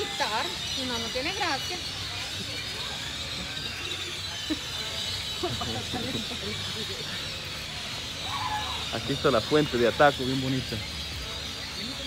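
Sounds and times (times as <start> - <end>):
constant high hiss: 0.0 - 12.0.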